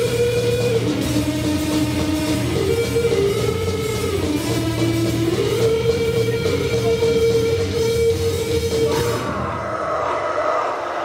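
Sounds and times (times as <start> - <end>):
punk band playing: 0.0 - 9.8
electric guitar feedback: 0.0 - 10.1.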